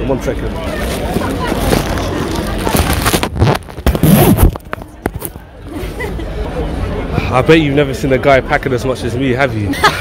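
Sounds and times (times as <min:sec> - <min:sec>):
clicks and rustles of bag: 0:00.8 - 0:05.4
backpack zipper pulled: 0:00.9 - 0:05.4.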